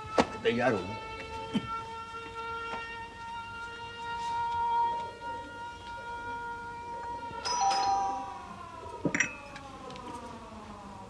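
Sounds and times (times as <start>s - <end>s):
two-tone doorbell chime: 7.4s - 9.4s.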